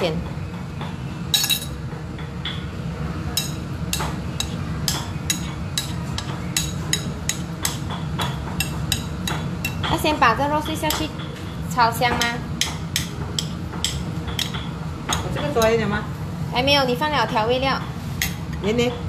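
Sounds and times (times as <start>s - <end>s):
low kitchen hum: 0.0s - 19.0s.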